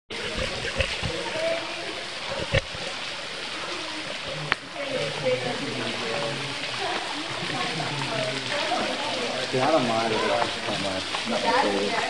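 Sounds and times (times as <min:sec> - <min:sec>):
faint voices: 0:00.1 - 0:12.0
waterfall rushing and splashing: 0:00.1 - 0:12.0.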